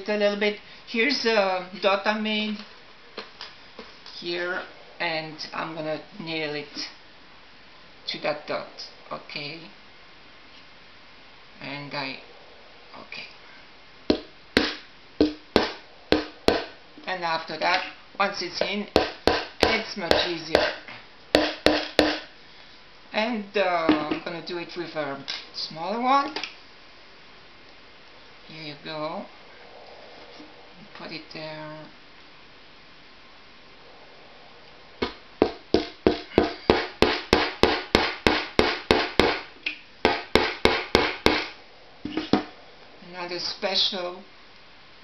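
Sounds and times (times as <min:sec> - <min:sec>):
hammer hitting nail: 0:14.1 - 0:16.7, 0:19.0 - 0:20.8, 0:21.4 - 0:22.3, 0:35.0 - 0:39.5, 0:40.1 - 0:41.5.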